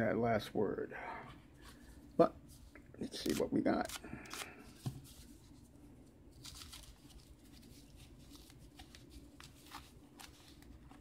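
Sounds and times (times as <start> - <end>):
paper wrapping rustling: 6.3 - 11.0.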